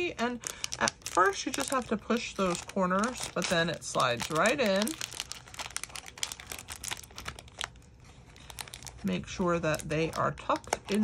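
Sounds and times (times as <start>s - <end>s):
plastic wrapper crinkling: 0.0s - 11.0s.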